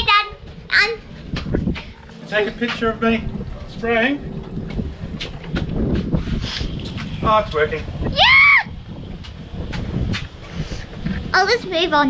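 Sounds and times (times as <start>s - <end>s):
cart rumbling over brick pavers: 0.0s - 8.1s, 8.8s - 12.0s
wind on the microphone: 0.0s - 12.0s
footsteps: 0.4s - 7.3s.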